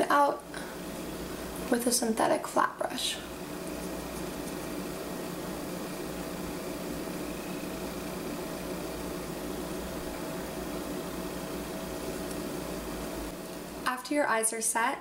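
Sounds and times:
steady hiss: 0:00.0 - 0:14.9
low electrical hum: 0:00.0 - 0:15.0.

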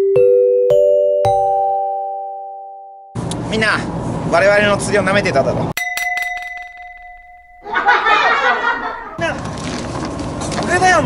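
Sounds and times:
bell-like ringing: 0:05.8 - 0:09.1.

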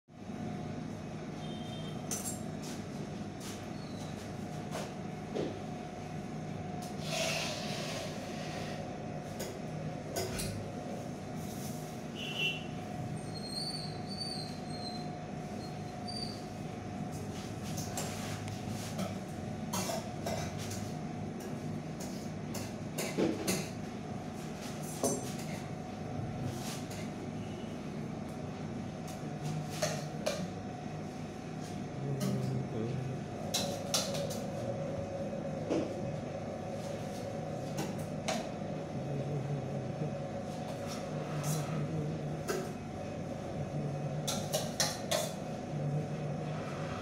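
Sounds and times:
steady low hum: 0:00.1 - 0:47.0.

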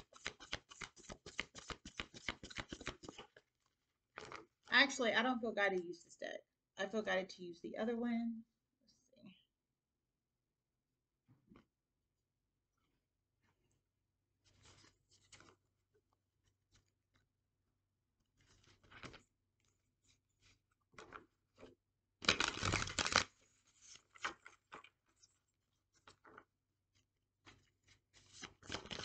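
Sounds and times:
cards being shuffled: 0:00.0 - 0:03.4, 0:22.2 - 0:24.6, 0:28.2 - 0:29.0.

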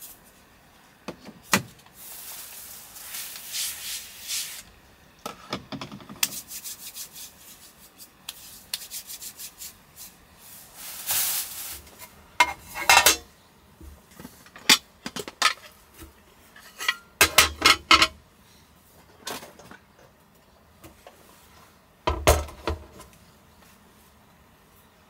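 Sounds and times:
cookware rubbing and scraping: 0:05.3 - 0:13.3, 0:16.4 - 0:18.2
cookware clinks and knocks: 0:12.4 - 0:13.3, 0:16.6 - 0:18.2.

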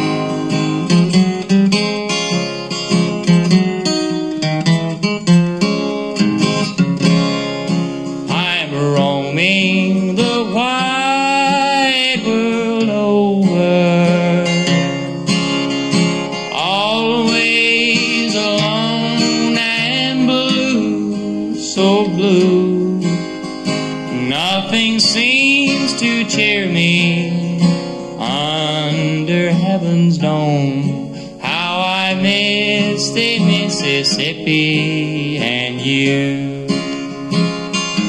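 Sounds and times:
strummed acoustic guitar: 0:00.0 - 0:38.0
man yodeling: 0:08.3 - 0:15.1, 0:16.5 - 0:23.1.

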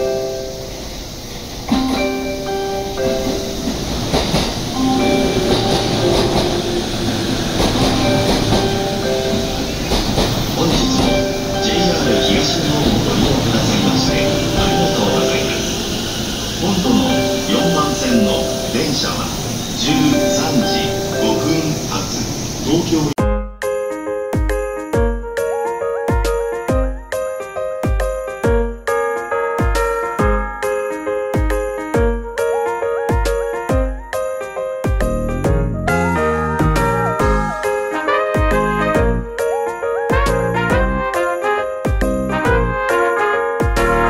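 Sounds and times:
train wheels clattering over rails: 0:00.6 - 0:22.6
melody of short notes: 0:01.7 - 0:15.9, 0:35.0 - 0:39.6.

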